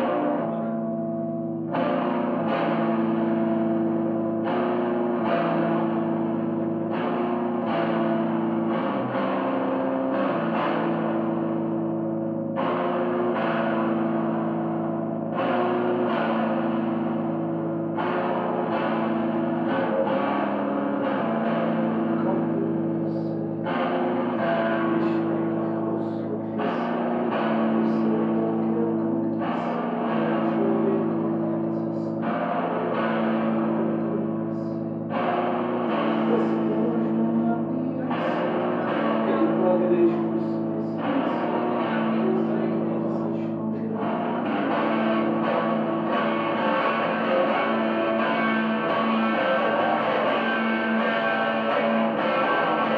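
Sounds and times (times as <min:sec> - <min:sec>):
droning electric guitar chords: 0:00.0 - 0:52.9.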